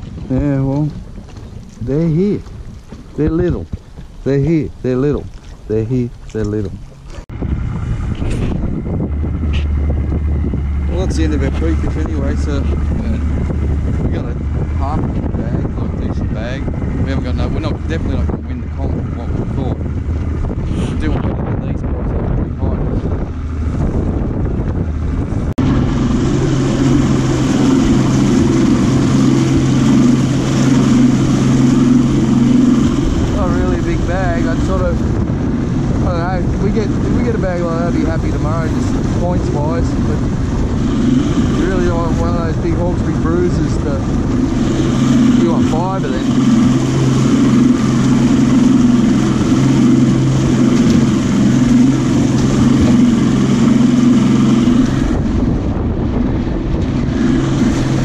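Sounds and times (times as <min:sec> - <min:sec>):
outboard motor running: 0:00.0 - 0:58.0
water rushing past hull: 0:00.0 - 0:58.0
wind noise: 0:00.0 - 0:58.0.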